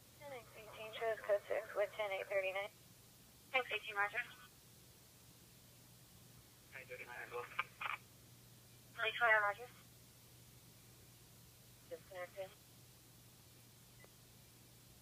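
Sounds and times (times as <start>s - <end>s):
faint low hum: 0.0s - 15.0s.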